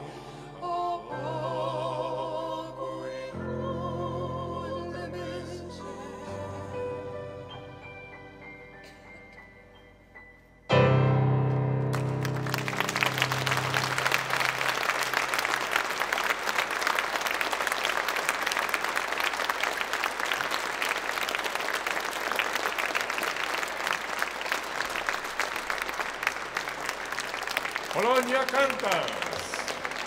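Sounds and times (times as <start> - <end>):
piano chord ringing: 7.5 - 14.6
audience applause: 11.9 - 30.0.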